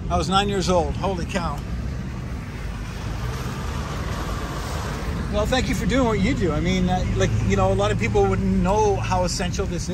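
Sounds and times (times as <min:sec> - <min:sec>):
truck engine and tyres rumbling: 0:00.0 - 0:09.9.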